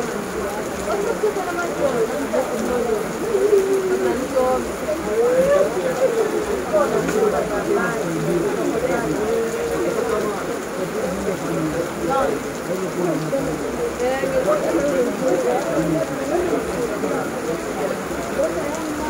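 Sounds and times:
heavy rain falling: 0.0s - 19.0s
indistinct voices talking: 0.0s - 19.0s.

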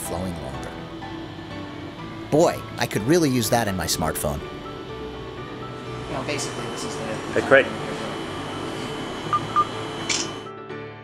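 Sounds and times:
steady background hum: 0.0s - 10.5s.

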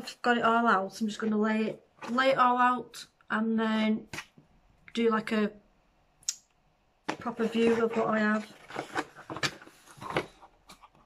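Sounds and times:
packaging rustling: 7.1s - 11.0s.

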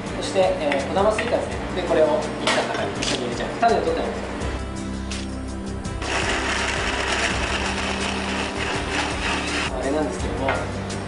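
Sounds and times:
electric blender running: 6.0s - 9.7s.

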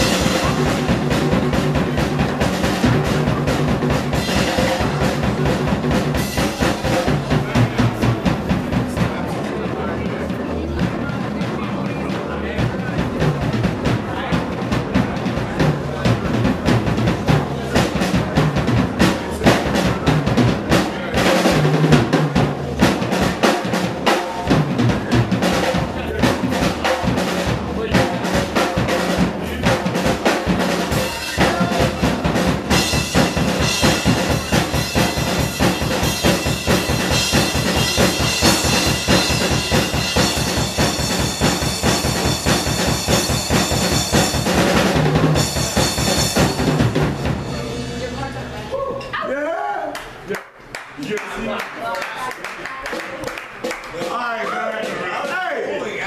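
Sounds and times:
drum solo: 0.0s - 49.1s.

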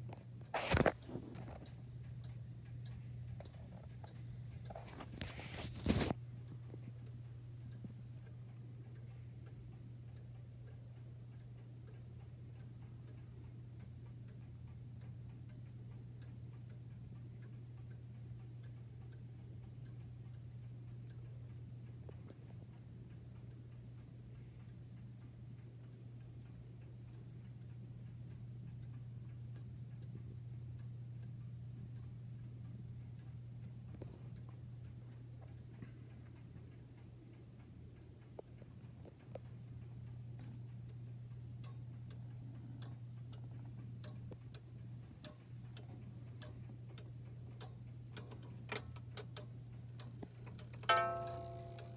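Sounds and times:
low hum: 1.0s - 51.9s
pendulum clock ticking: 1.4s - 5.0s, 6.2s - 51.9s.

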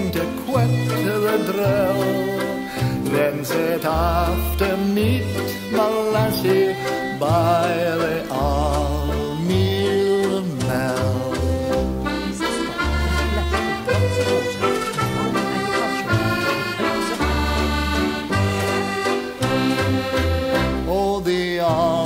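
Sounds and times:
folk melody over bass accompaniment: 0.0s - 22.0s.

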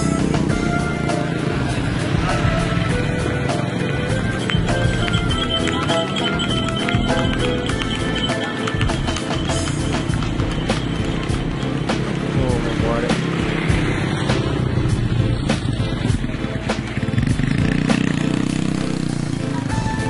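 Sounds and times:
motorcycle engine passing: 0.0s - 19.9s
music: 0.0s - 20.0s
crowd chatter: 2.1s - 11.9s.

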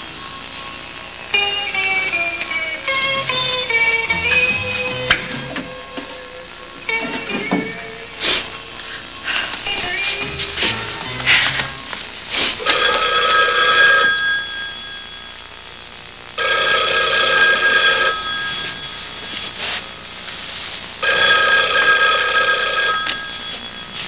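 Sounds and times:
telephone bell ringing: 12.6s - 15.8s, 16.4s - 24.0s.

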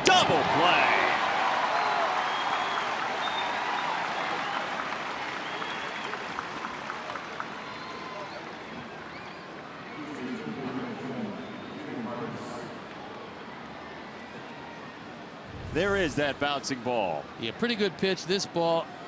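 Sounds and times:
crowd cheering and applauding: 0.3s - 8.4s
whistles: 1.8s - 3.6s, 5.4s - 6.2s, 11.4s - 11.9s.

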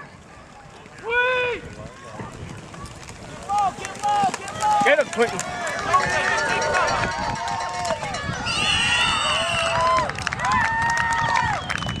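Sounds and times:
spectators yelling and cheering: 3.5s - 12.0s
shrill whistle: 8.5s - 9.8s, 11.5s - 12.0s.

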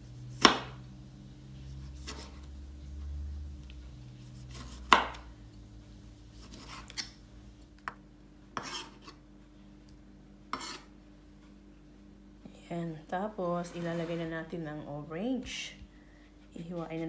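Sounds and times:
knife chopping on wooden board: 0.3s - 0.8s, 4.4s - 5.3s.

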